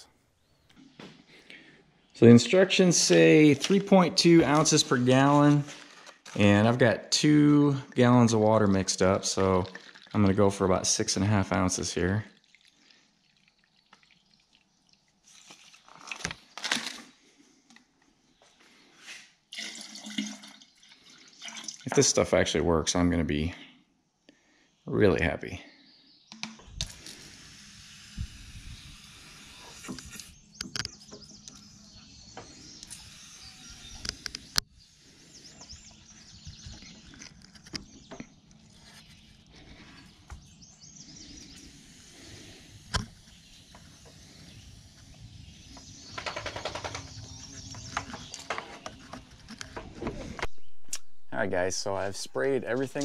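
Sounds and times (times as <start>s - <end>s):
sprayer hissing: 26.8s - 30.4s, 41.2s - 44.6s.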